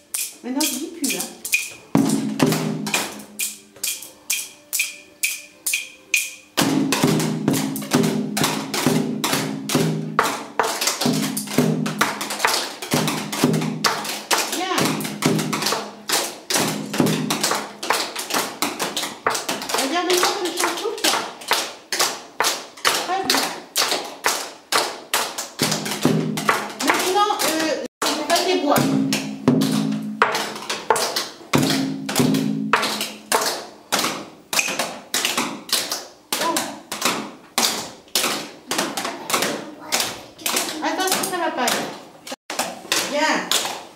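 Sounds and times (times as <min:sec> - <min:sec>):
sticks tapped in rhythm: 0:00.0 - 0:43.9.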